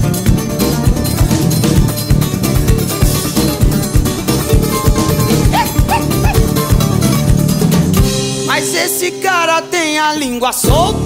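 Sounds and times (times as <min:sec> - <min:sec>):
drums and hand percussion: 0:04.0 - 0:08.5.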